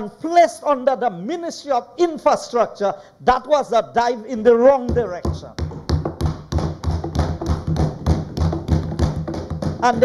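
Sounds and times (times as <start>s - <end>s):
people thumping on wooden desks: 4.8s - 10.0s.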